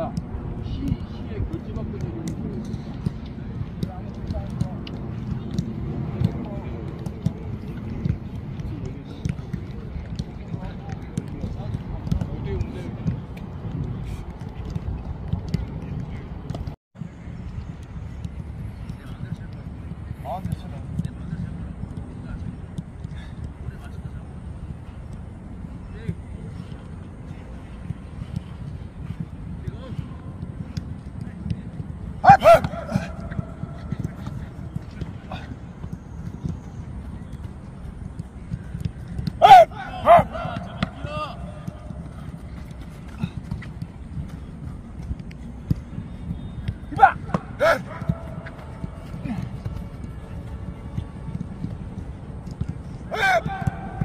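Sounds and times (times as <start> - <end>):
players shouting: 32.2 - 35.6, 39.3 - 43.4, 46.8 - 49.9, 53.1 - 54.0.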